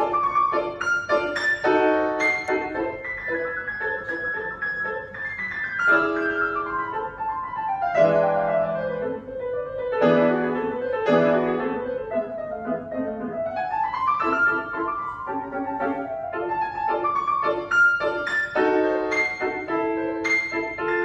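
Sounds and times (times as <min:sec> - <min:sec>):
classical grand piano: 0:00.0 - 0:21.0.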